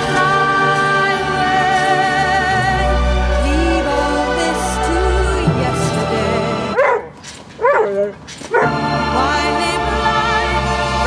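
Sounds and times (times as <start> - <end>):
song playing: 0.0 - 6.8, 8.6 - 11.0
dog whining: 6.8 - 8.8.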